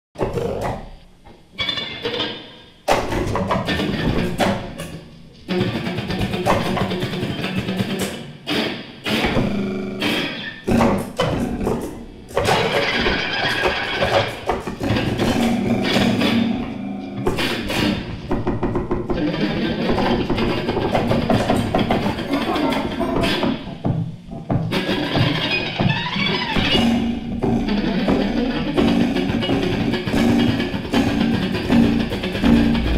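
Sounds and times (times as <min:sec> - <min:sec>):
electric guitar: 0:00.2 - 0:32.9
electronic sounds: 0:09.1 - 0:17.0, 0:32.4 - 0:32.9.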